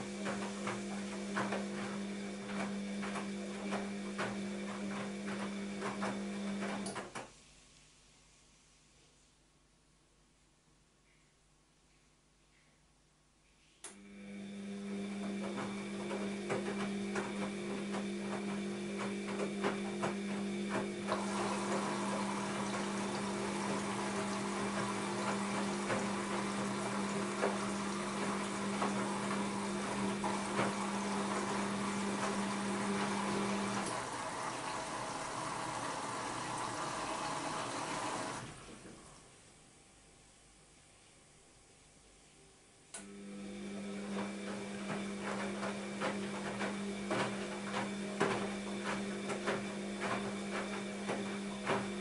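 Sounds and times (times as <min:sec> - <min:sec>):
washing machine hum: 0:00.0 - 0:07.4, 0:13.8 - 0:40.7, 0:42.7 - 0:52.0
water rushing into drum: 0:15.3 - 0:39.2.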